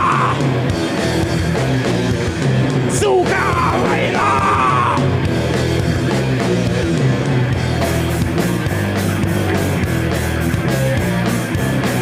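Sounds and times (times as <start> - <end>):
shouted vocal: 0.0 - 0.5, 2.9 - 5.2
heavy rock band playing: 0.0 - 12.0.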